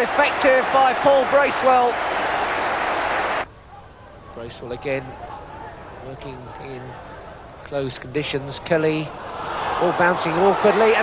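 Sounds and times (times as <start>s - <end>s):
stadium crowd cheering: 0.0s - 3.5s, 9.1s - 11.0s.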